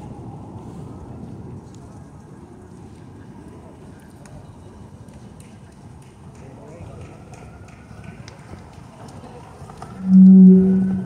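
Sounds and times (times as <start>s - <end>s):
faint outdoor crowd noise: 0.0s - 11.0s
loud low-pitched tone: 10.0s - 11.0s.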